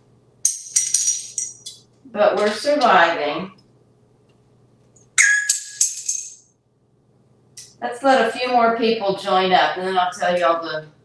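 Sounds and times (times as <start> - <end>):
jingling rattle: 0.5 - 1.8, 5.7 - 6.4.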